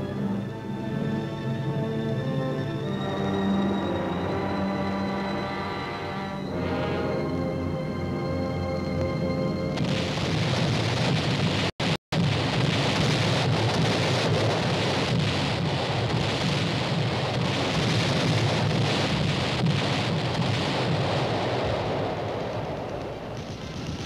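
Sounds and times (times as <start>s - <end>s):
bombardment rumble with crackling: 8.6s - 24.0s.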